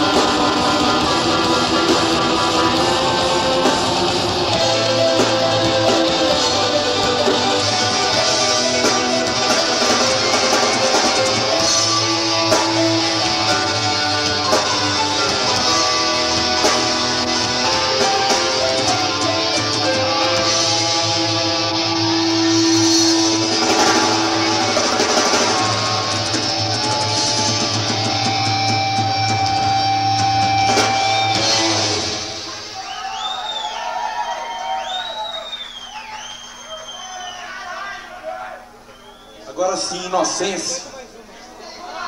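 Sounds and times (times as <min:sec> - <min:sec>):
heavy rock band playing: 0:00.0 - 0:35.0
crowd whistling and shouting: 0:00.0 - 0:40.7.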